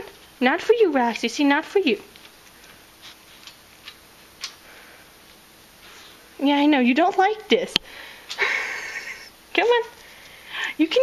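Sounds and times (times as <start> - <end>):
guinea pig nibbling lettuce: 0.9 - 4.6.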